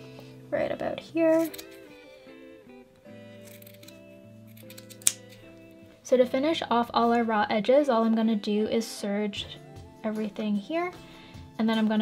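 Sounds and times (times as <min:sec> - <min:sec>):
soft background music: 0:00.0 - 0:12.0
scissors snipping fabric: 0:01.3 - 0:01.9, 0:03.4 - 0:05.4.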